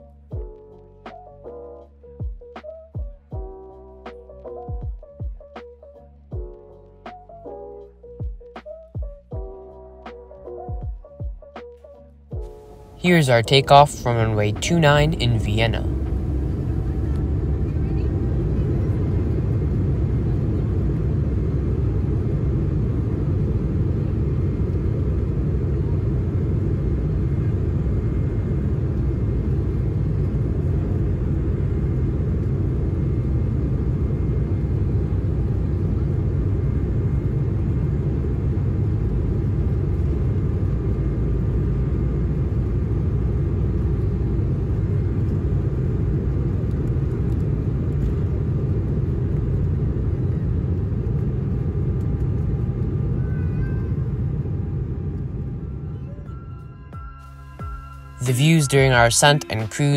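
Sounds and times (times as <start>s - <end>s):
jet engines at takeoff thrust: 15.9s - 56.0s.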